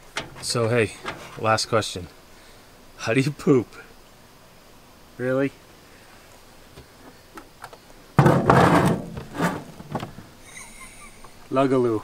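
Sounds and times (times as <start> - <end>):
plastic bucket scraping on wooden floor: 8.2 - 10.0.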